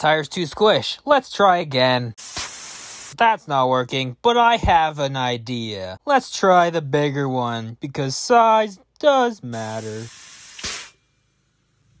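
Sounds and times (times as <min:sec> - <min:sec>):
compressed air hissing: 0:02.2 - 0:03.2, 0:09.6 - 0:11.0.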